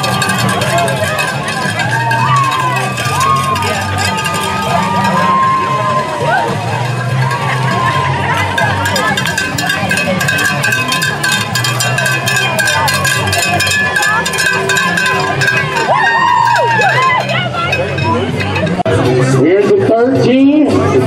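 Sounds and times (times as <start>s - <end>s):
cowbell shaken rapidly: 0.0s - 19.1s
crowd calls and cheers: 0.0s - 21.0s
crowd voices: 0.0s - 21.0s.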